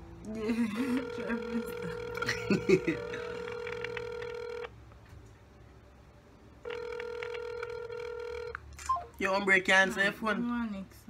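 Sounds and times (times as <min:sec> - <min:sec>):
phone ringback tone: 0:00.8 - 0:04.7, 0:06.6 - 0:08.6.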